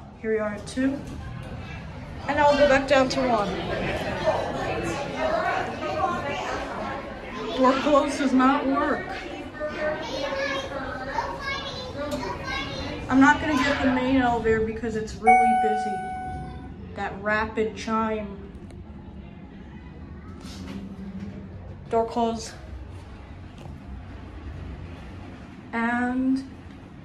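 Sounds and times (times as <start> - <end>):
children talking and calling out: 1.2 - 14.6, 15.2 - 16.8
elevator low hum: 14.3 - 19.4.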